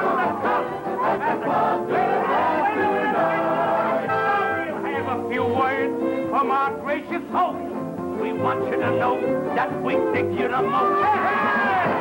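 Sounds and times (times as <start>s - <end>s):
big band dance music: 0.0s - 12.0s.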